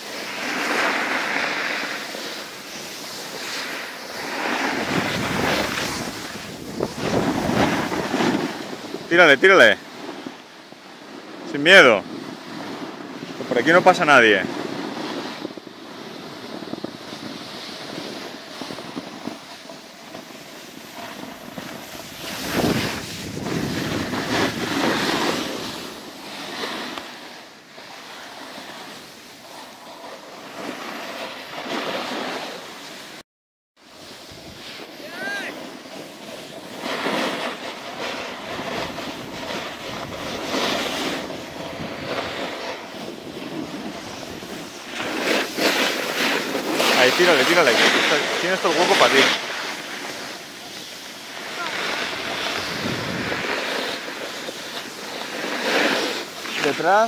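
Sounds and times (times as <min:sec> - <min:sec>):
skis scraping over packed snow: 0:00.0 - 0:33.2, 0:33.9 - 0:57.0
wind rushing on microphone: 0:02.6 - 0:27.2, 0:33.9 - 0:57.0.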